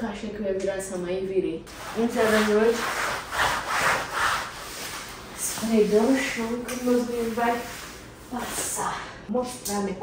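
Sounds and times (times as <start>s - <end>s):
broom sweeping hard floor: 1.7s - 8.9s.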